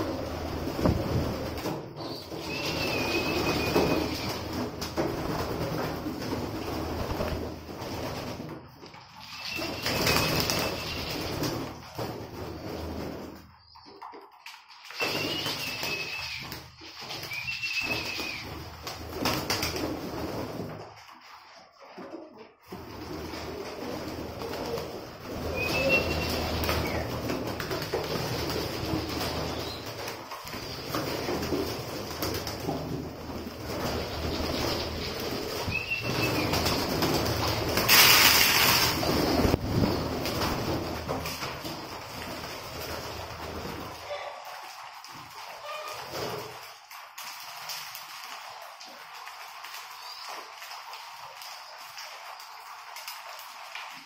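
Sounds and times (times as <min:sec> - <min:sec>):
wings flapping: 0:00.0 - 0:54.0
pigeons cooing: 0:02.0 - 0:04.6, 0:23.5 - 0:27.3.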